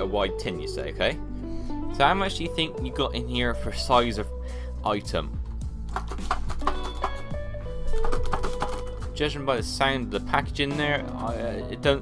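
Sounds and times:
background music: 0.0s - 12.0s
biscuits rattling in metal tin: 5.9s - 9.2s.

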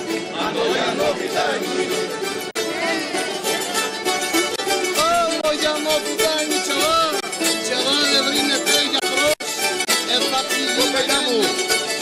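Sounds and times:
mandolins playing: 0.0s - 12.0s
men singing: 0.1s - 2.1s.

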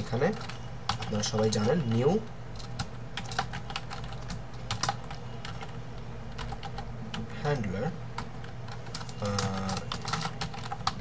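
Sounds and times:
computer keyboard typing: 0.0s - 7.6s, 8.2s - 11.0s.

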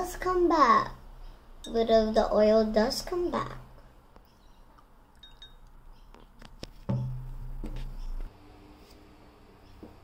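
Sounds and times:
metal spoon clinking glass mug: 5.2s - 5.7s.

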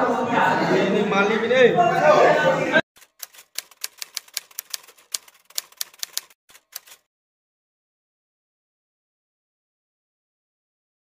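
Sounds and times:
typewriter key clicks: 3.0s - 7.0s.

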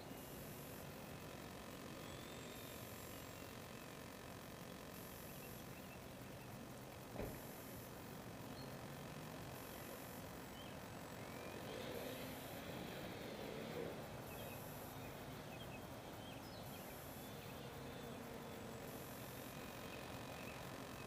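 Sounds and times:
faint background noise: 0.0s - 21.0s
faint steady tone: 0.0s - 21.0s
brief thump: 7.2s - 7.4s.

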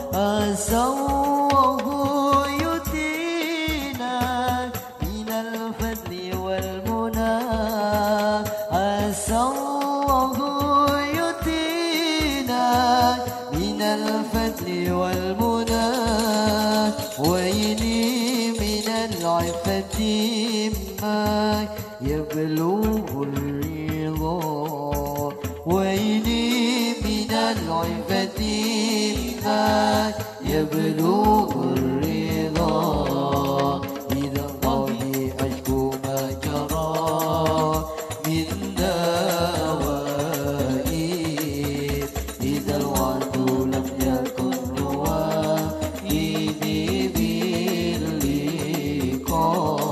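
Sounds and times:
hand drums beating: 0.0s - 49.9s
person singing ornamented vocal line: 0.0s - 49.9s.

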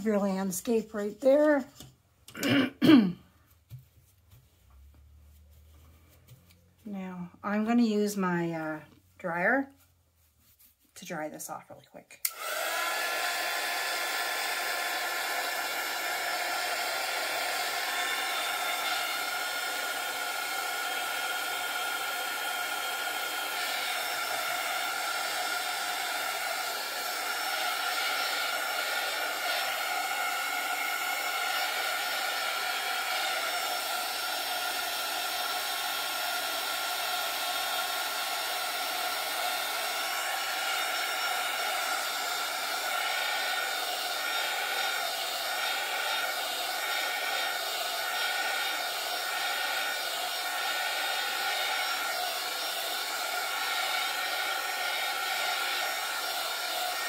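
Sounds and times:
heat tool blowing air: 12.2s - 57.0s.

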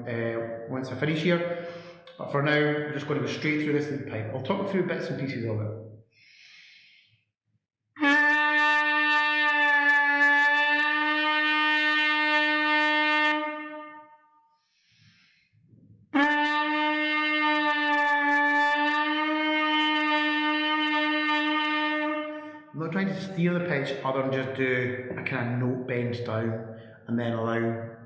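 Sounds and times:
person breathing: 1.4s - 2.1s, 6.1s - 7.3s, 14.6s - 15.7s.

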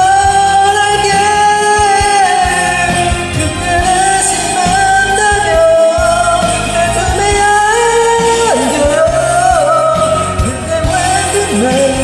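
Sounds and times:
karaoke backing track: 0.0s - 12.0s
person singing a pop-rock ballad: 0.0s - 12.0s.

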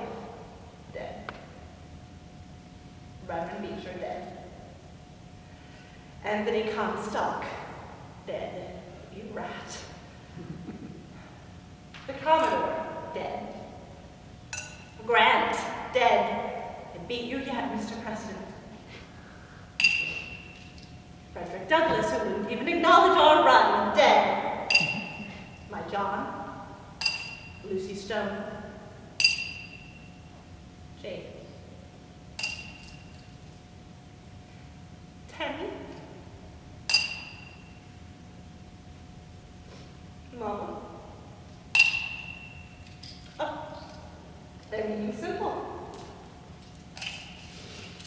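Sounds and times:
woman speaking: 0.9s - 1.3s, 3.2s - 4.3s, 6.2s - 7.7s, 8.3s - 10.0s, 12.1s - 13.7s, 15.0s - 18.6s, 21.4s - 24.5s, 25.7s - 26.5s, 27.6s - 28.6s, 31.0s - 31.6s, 35.3s - 36.0s, 40.3s - 41.0s, 43.4s - 43.9s, 44.7s - 45.9s
china plate clinking: 24.7s - 25.6s.

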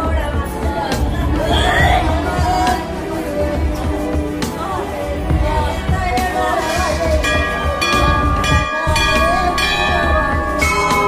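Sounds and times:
devotional music with singing: 0.0s - 11.0s
metal bells ringing: 7.2s - 11.0s.

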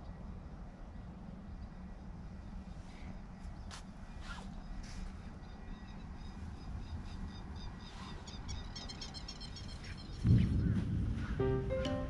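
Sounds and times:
steady low rumble: 0.0s - 12.0s
sudden loud low rumble: 10.2s - 12.0s.

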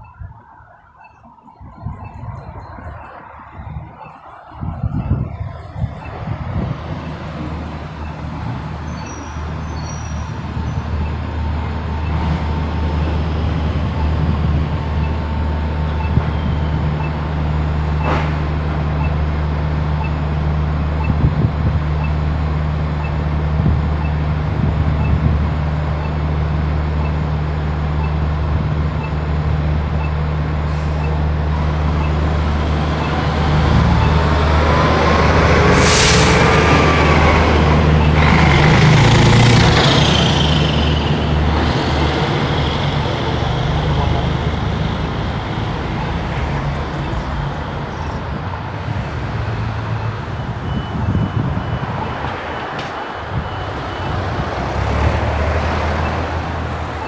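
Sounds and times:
bus accelerating with whine: 0.0s - 57.0s
heavy diesel engine droning: 1.8s - 57.0s.

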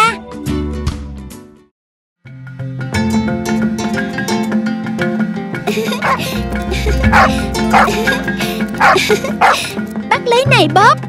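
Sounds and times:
background music: 2.3s - 11.0s
dog barking: 6.0s - 6.2s, 7.1s - 8.0s, 8.8s - 9.7s.

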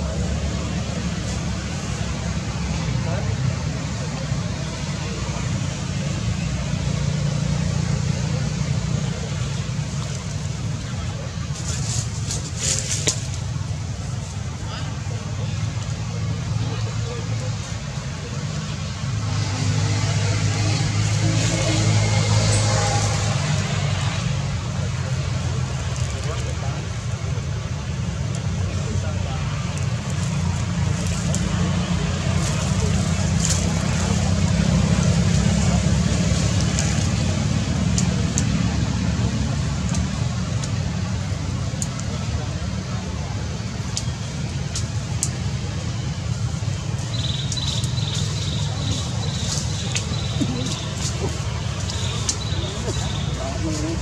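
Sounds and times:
people's voices in background: 0.0s - 54.0s.

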